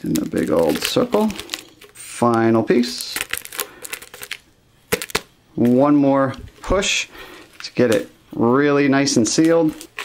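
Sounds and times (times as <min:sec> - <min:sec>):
foil tape crinkling: 0:00.0 - 0:05.8, 0:09.2 - 0:10.0.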